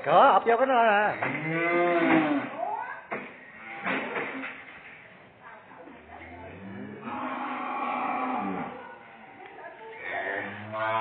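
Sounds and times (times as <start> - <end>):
cow mooing: 1.3 - 2.5, 6.2 - 9.3.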